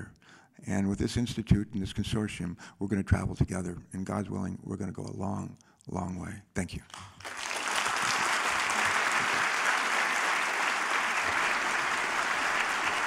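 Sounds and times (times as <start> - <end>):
large audience applauding: 6.9 - 13.0.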